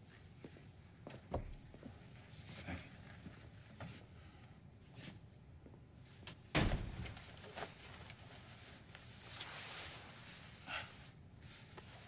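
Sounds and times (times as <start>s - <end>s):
door shutting thump: 6.6s - 7.2s.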